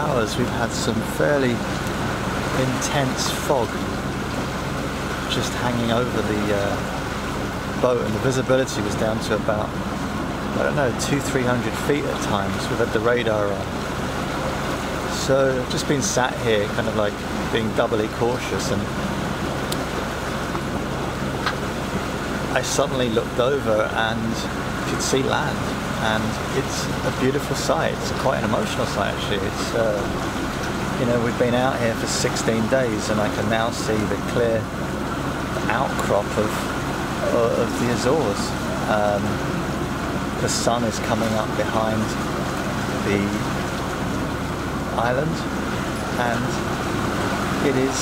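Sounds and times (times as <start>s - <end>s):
low steady drone: 0.0s - 48.0s
low steady hum: 0.0s - 48.0s
sea rushing: 0.0s - 48.0s
wind: 0.0s - 48.0s.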